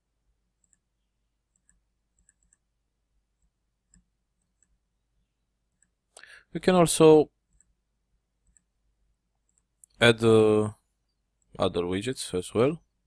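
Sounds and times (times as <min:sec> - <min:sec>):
faint computer mouse clicks: 0:00.6 - 0:00.9, 0:01.5 - 0:02.6, 0:03.4 - 0:04.8.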